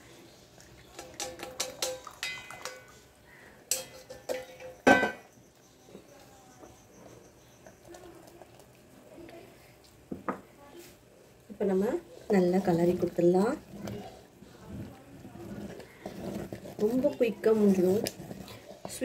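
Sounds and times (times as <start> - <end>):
metal kitchen utensils clinking: 0.9 - 3.0, 3.7 - 5.3.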